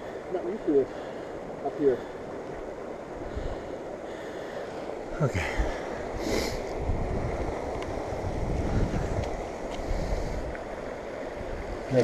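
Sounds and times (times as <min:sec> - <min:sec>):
mountain stream running: 0:00.0 - 0:12.0
wind buffeting microphone: 0:05.3 - 0:12.0.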